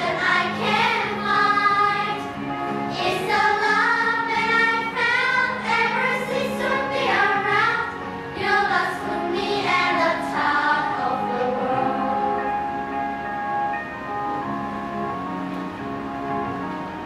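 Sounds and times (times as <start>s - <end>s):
children singing together: 0.0s - 12.4s
background music: 0.0s - 17.0s.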